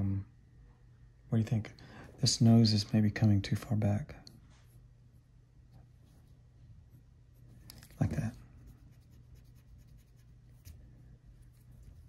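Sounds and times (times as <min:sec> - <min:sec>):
pencil scratching on paper: 0:08.6 - 0:10.8.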